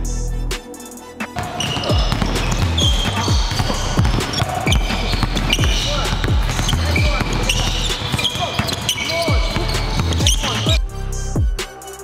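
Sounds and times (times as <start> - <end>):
music: 0.0 - 12.0
basketball dribbling on hardwood floor: 1.4 - 10.8
sneakers squeaking: 1.4 - 10.8.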